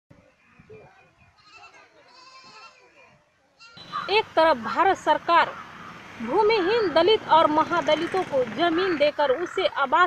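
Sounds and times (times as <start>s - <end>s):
quiet village ambience: 0.1s - 10.0s
goats bleating: 1.4s - 2.8s.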